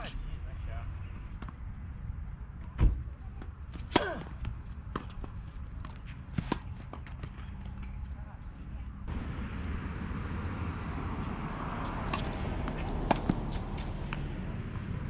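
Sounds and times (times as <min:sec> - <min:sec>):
tennis ball bouncing on court: 0:03.4 - 0:08.0, 0:11.8 - 0:15.0
tennis ball struck by rackets: 0:03.8 - 0:07.4, 0:11.8 - 0:15.0.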